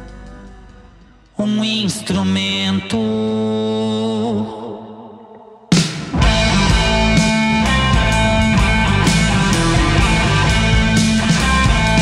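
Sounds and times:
voice singing long low notes: 2.6 - 12.0.

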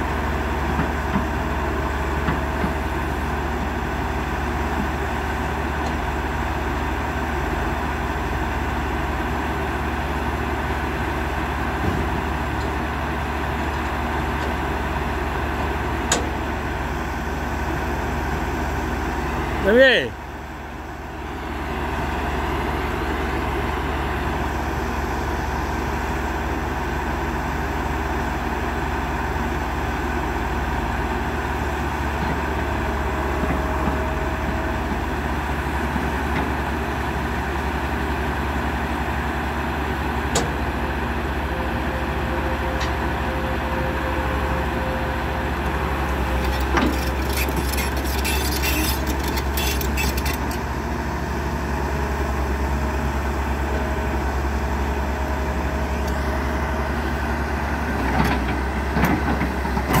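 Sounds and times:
excavator diesel engine running: 0.0 - 60.0
rattling clatter: 46.4 - 50.7.

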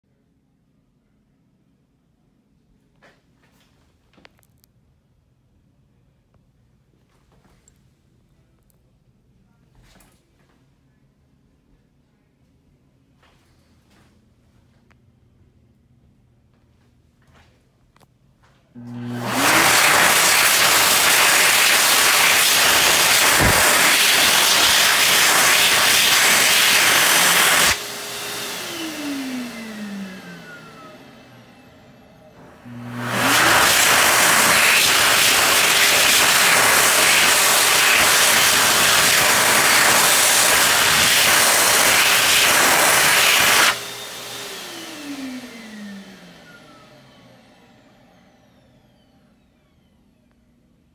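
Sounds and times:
hand dryer blowing air: 18.8 - 48.8
motor winding down whine: 18.8 - 50.4.

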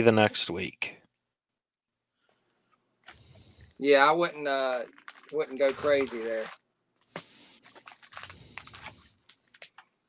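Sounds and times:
paper sheet handled: 4.9 - 9.8
foil packs rustling and clicking: 4.9 - 9.9.

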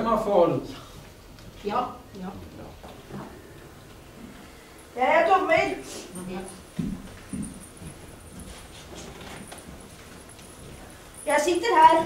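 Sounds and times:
footsteps on a stage: 5.5 - 12.0.

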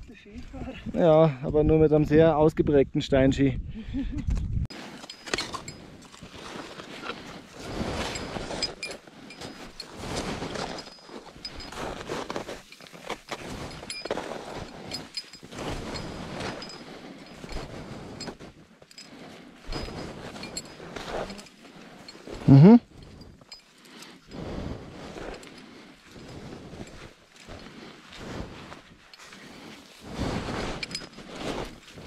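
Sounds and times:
carabiners clinking: 4.7 - 32.0
ice axe planted in snow: 9.4 - 18.6, 24.3 - 32.0
boots crunching in snow: 9.5 - 16.6.

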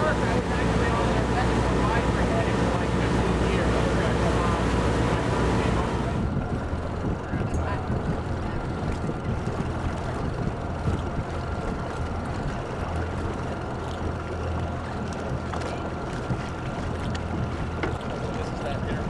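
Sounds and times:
boat engine idling: 0.0 - 19.0.

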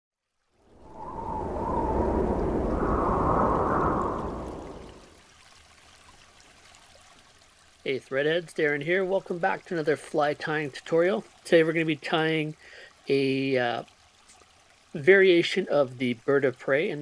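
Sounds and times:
faint wavering whistle: 0.7 - 5.2
rushing whoosh: 0.7 - 5.2
low hiss: 0.7 - 5.4, 7.7 - 17.0.

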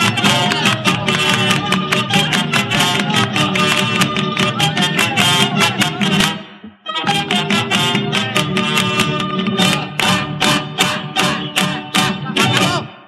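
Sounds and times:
fast flamenco guitar strumming: 0.0 - 13.0.

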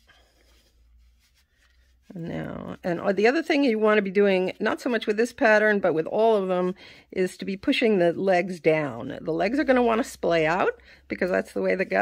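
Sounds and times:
fabric toy rustling: 0.0 - 4.5.

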